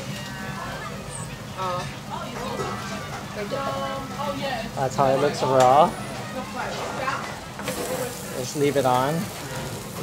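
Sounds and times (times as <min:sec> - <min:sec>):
faint restaurant chatter: 0:00.0 - 0:10.0
meat sizzling on a grill: 0:00.0 - 0:10.0.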